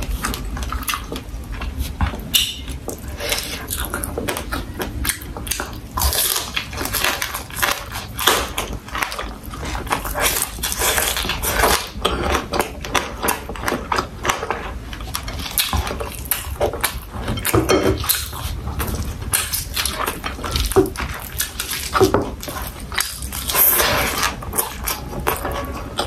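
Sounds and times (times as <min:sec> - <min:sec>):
chewing and crunching food: 0:00.0 - 0:26.0.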